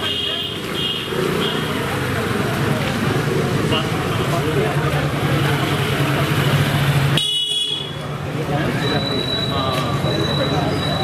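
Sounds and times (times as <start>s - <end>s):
people talking: 0.0s - 6.9s, 7.9s - 11.0s
vehicle engines humming: 0.0s - 11.0s.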